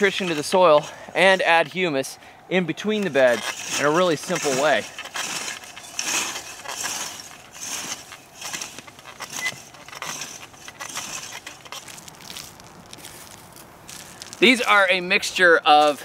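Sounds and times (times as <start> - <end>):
wheel hoe scraping through soil: 0.0 - 16.0.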